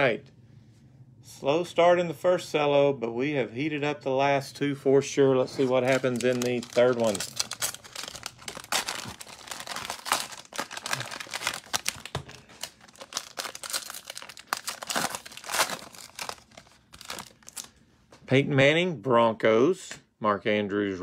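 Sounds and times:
cellophane wrapper crinkling: 0:05.5 - 0:17.8.

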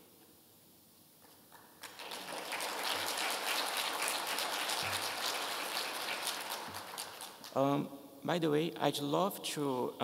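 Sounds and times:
audience applauding: 0:01.8 - 0:07.5.

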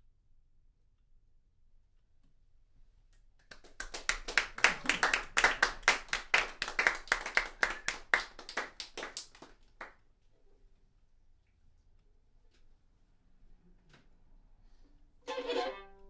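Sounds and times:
small audience clapping: 0:03.4 - 0:10.1.

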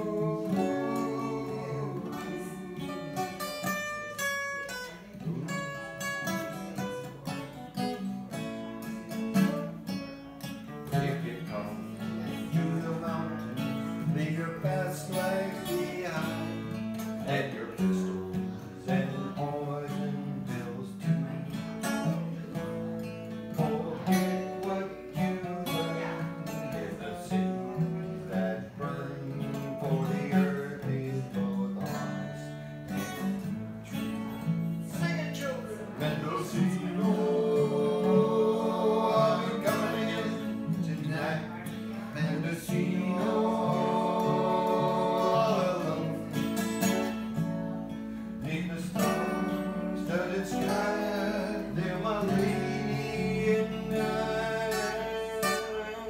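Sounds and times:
acoustic guitars strummed and picked: 0:00.0 - 0:56.0.

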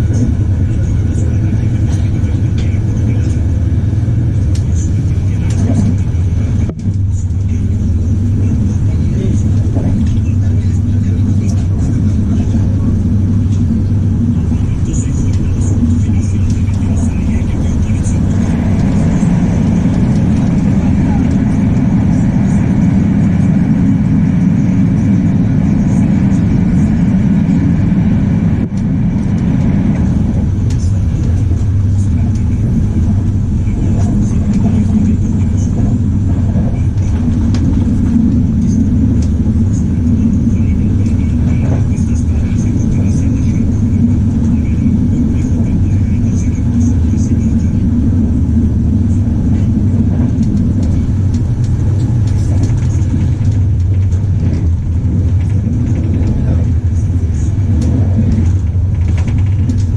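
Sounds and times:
train wheels rumbling: 0:00.0 - 0:59.9.

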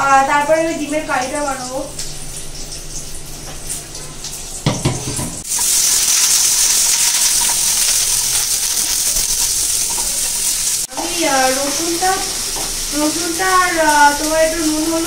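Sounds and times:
food sizzling in hot oil: 0:00.7 - 0:15.0
spatula stirring: 0:05.5 - 0:11.4.

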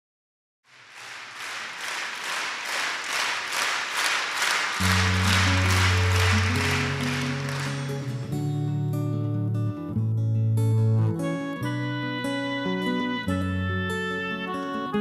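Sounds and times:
audience applauding: 0:00.7 - 0:08.5
band playing long low notes: 0:04.8 - 0:08.6.

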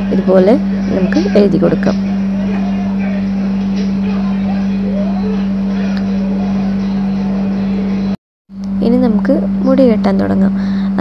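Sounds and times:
faint voices: 0:00.0 - 0:08.2
low-pitched hum: 0:00.0 - 0:11.0.

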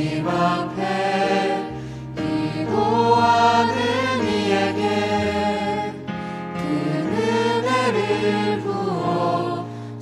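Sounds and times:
group singing worship music: 0:00.0 - 0:10.0.

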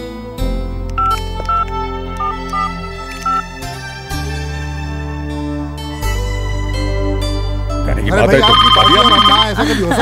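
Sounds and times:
phone electronic ringtone: 0:01.0 - 0:03.4, 0:08.3 - 0:09.5.

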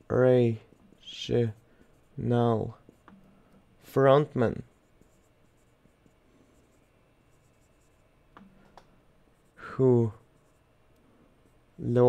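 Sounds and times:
marker scratching on whiteboard: 0:00.5 - 0:08.7, 0:09.4 - 0:10.8.

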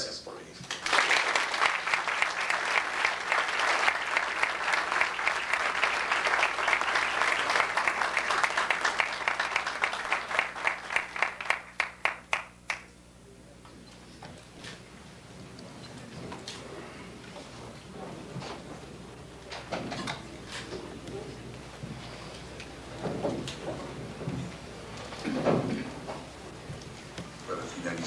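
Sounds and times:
audience applause: 0:00.7 - 0:13.0, 0:15.6 - 0:28.0.

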